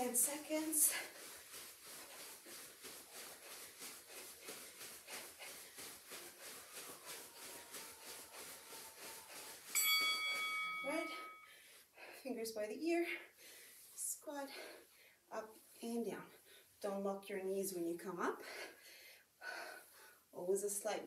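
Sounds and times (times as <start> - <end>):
jogging footfalls on carpet: 0.0 - 11.4.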